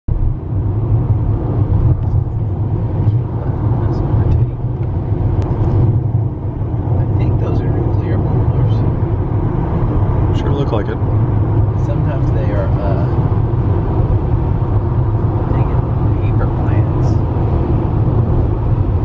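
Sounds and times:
car road and engine rumble: 0.1s - 19.0s.

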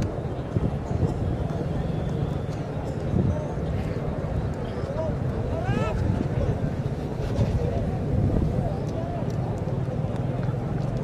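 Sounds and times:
crowd murmuring and chattering: 0.0s - 11.0s.

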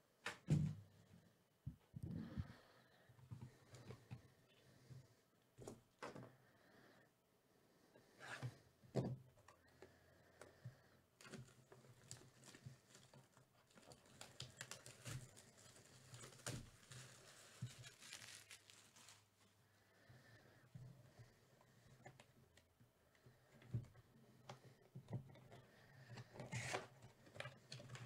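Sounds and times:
plastic wrap crinkling and tearing: 11.3s - 19.6s.

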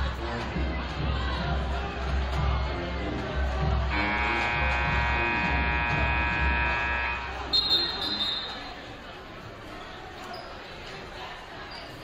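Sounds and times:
music with bass beat: 0.0s - 7.4s
scoreboard horn blast: 3.9s - 8.5s.

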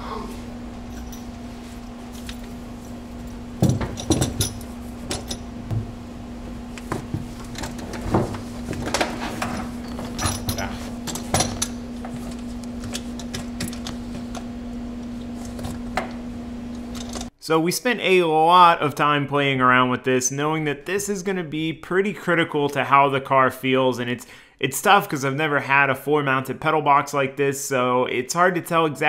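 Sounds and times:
low hum: 0.0s - 17.3s
metal clunks and rattles: 3.6s - 5.9s, 6.9s - 11.8s.

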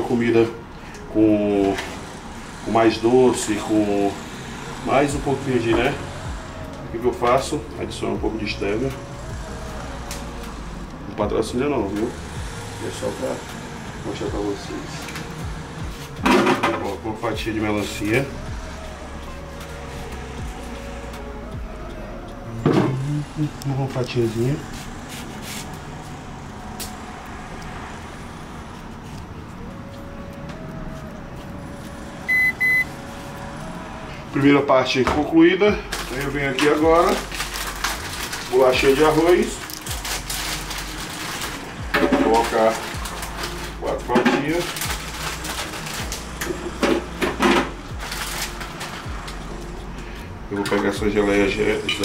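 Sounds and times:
high electronic beeps: 32.3s - 32.9s
packaging rustling: 35.9s - 49.8s.

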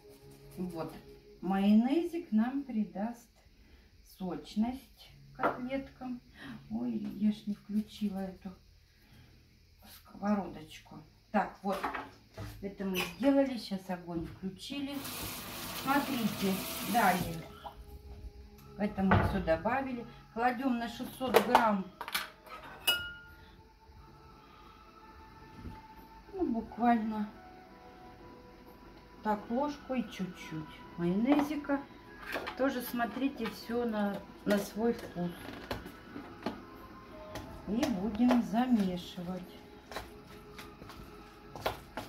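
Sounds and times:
metal spoon clinking kitchenware: 22.5s - 23.3s.

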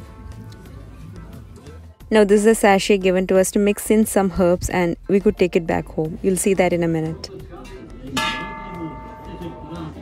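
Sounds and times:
cowbell ringing: 8.2s - 10.0s.

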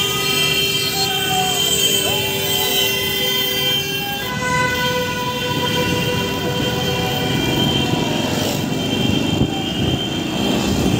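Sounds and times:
road noise: 0.0s - 10.9s
vehicle horns blasting: 0.0s - 10.9s.

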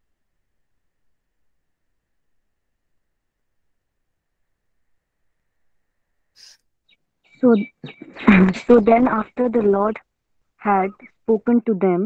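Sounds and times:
soft burst of hiss: 6.4s - 6.6s.

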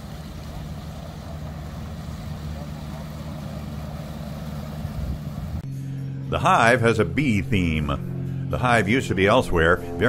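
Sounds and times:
motorboat engine humming: 0.0s - 10.0s.

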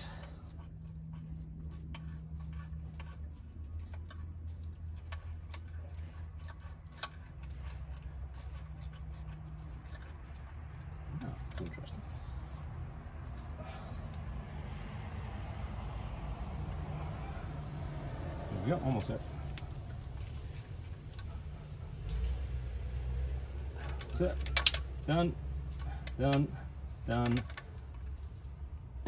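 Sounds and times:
hand tools clicking on metal: 0.0s - 12.1s, 18.3s - 22.3s, 23.8s - 25.0s, 25.7s - 28.1s
steady low hum: 0.0s - 29.0s.

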